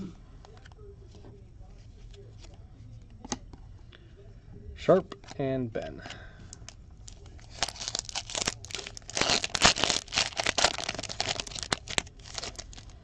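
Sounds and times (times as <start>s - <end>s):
foil wrapper tearing and crinkling: 7.1s - 12.9s.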